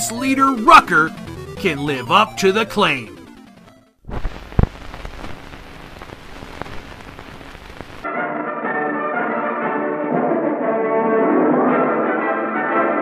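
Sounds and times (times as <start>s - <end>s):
old film soundtrack hiss and crackle: 0.0s - 8.1s
brass-led orchestral music: 8.0s - 13.0s.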